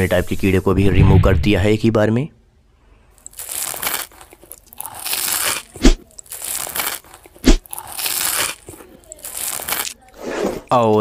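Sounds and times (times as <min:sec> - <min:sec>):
knife slicing crunchy growth: 0:03.4 - 0:08.7
sharp cracks: 0:05.0 - 0:10.0.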